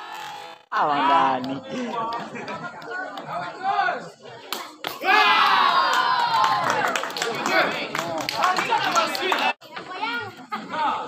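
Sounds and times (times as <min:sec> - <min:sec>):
spectators talking and calling out: 0:00.0 - 0:11.0
loud shouting: 0:05.0 - 0:09.5.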